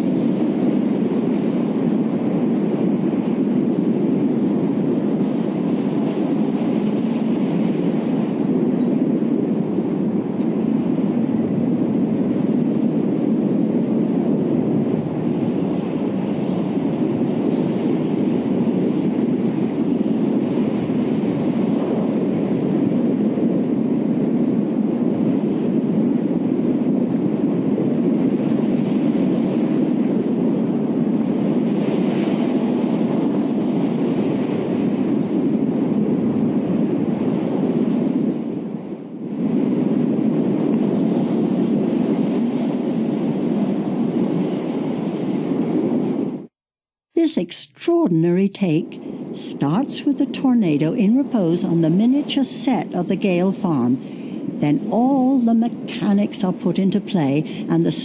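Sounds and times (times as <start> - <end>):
deep rushing storm wind: 0.0 - 46.6, 47.2 - 58.0.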